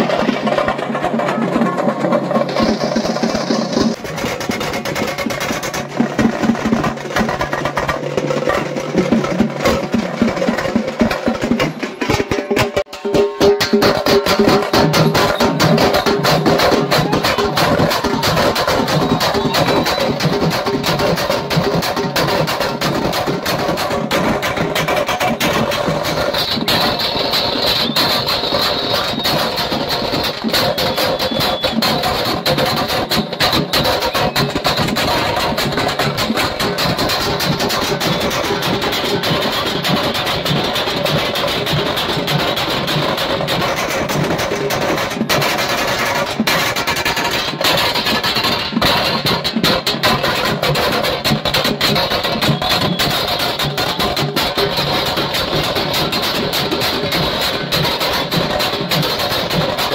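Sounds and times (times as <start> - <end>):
fast procession drumming: 0.0 - 59.9.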